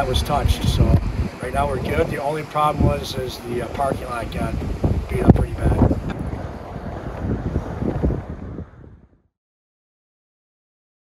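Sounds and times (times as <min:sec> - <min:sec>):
wind buffeting microphone: 0:00.0 - 0:09.3.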